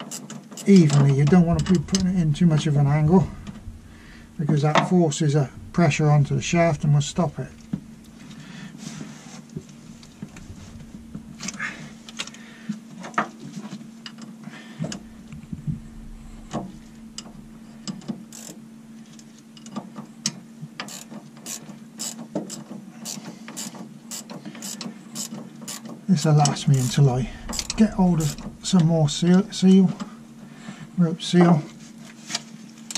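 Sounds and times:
steady low hum: 0.7 - 12.9, 14.7 - 19.7, 26.2 - 31.0.

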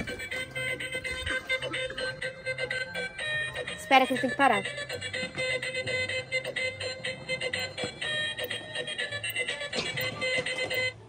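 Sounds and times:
toy playing electronic beeping tune: 0.0 - 11.0.

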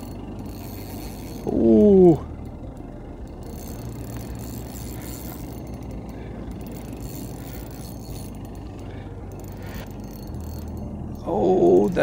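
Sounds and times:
spinning reel cranking: 0.0 - 12.0
steady low hum: 0.0 - 12.0.

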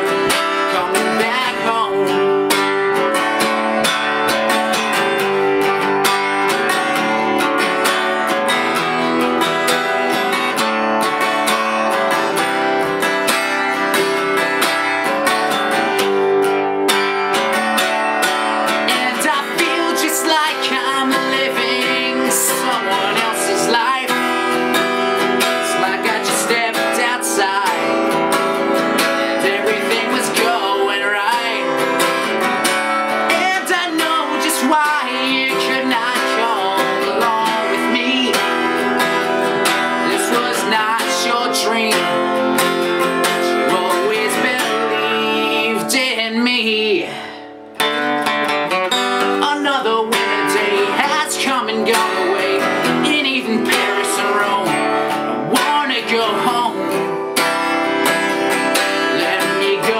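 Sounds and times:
man singing: 0.0 - 5.8, 17.3 - 47.5, 48.9 - 59.9
acoustic guitar strumming: 0.0 - 59.9.

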